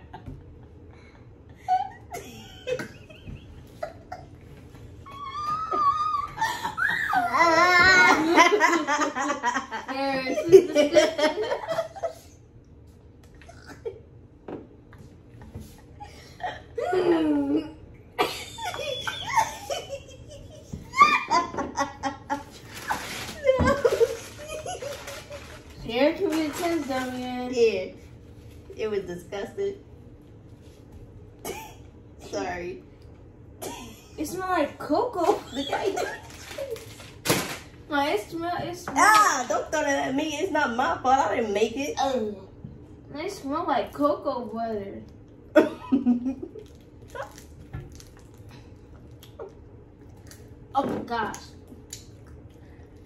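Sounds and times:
child laughing loudly: 5.1 - 9.6, 18.2 - 25.6.

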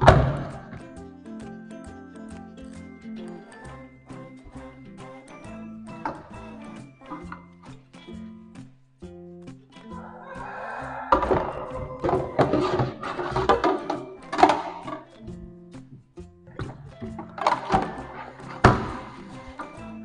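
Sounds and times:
background music with steady beat: 0.0 - 20.0
plates clattering in sink: 11.1 - 15.2, 16.6 - 19.2.

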